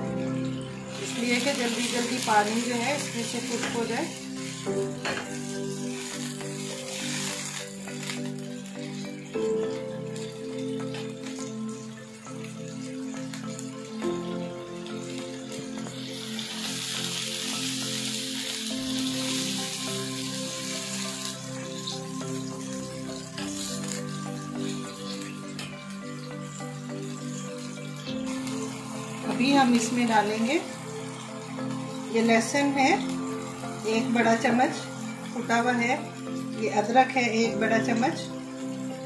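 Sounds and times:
background music of sustained tones: 0:00.0 - 0:39.0
food sizzling in a pan: 0:00.0 - 0:39.0.

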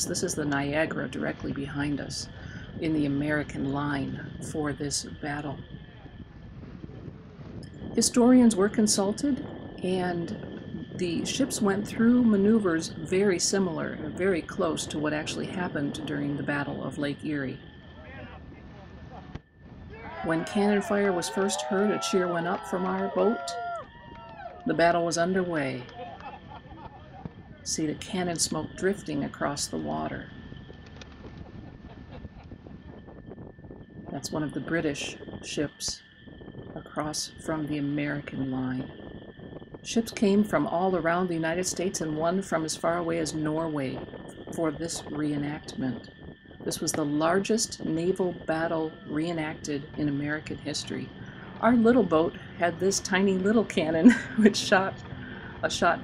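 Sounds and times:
high hum: 0:00.0 - 0:56.0
low rumble aboard boat: 0:00.0 - 0:56.0
wind on microphone: 0:00.0 - 0:56.0
faint crackles: 0:12.8 - 0:34.4, 0:50.0 - 0:56.0
faint voices: 0:19.9 - 0:30.3.

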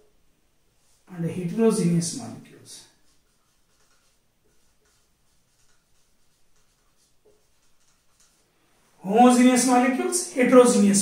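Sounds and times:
marker pen writing on whiteboard: 0:02.9 - 0:08.5.

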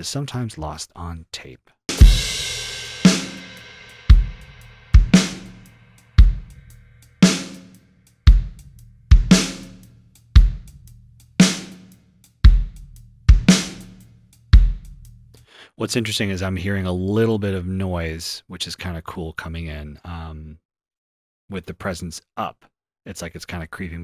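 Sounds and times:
cymbal crash ringing: 0:01.9 - 0:07.7
hi-hat ticks: 0:05.3 - 0:15.4.

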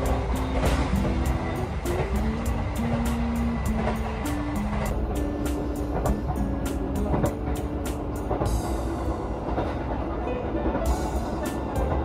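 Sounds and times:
background music melody: 0:00.0 - 0:12.0
train rumble: 0:00.0 - 0:12.0.

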